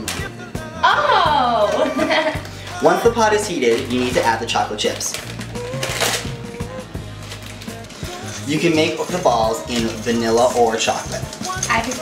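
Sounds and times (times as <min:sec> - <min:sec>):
background music with bass line: 0:00.0 - 0:12.0
plastic bag crinkling: 0:02.7 - 0:12.0.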